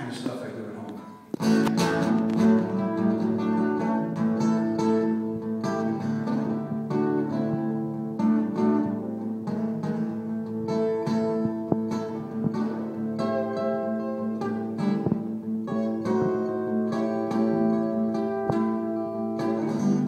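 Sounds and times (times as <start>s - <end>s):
acoustic guitar: 0.0s - 20.0s.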